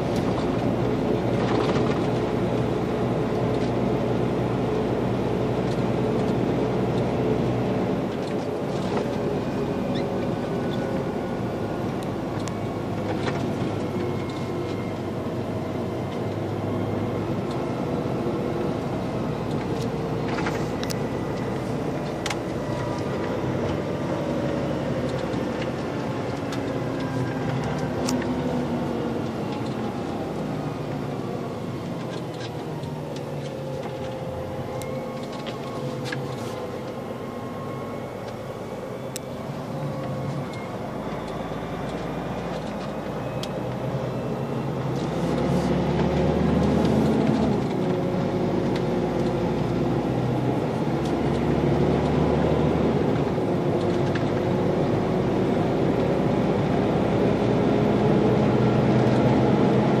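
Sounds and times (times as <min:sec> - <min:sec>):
road noise: 0:00.0 - 1:00.0
truck diesel engine running: 0:00.0 - 1:00.0.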